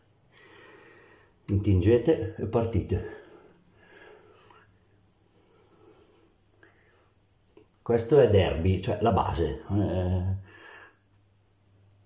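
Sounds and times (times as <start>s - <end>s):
shaving stick rubbing stubble: 1.6s - 12.0s.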